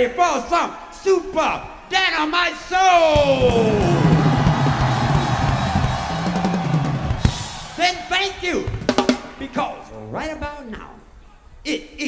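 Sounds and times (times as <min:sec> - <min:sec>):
repeating bass line: 0:03.2 - 0:07.4
soul funk band playing: 0:03.2 - 0:07.6
drum kit hits: 0:03.2 - 0:09.5.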